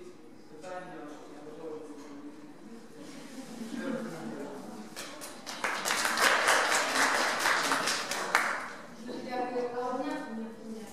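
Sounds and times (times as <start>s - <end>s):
audience applauding: 5.2s - 8.8s.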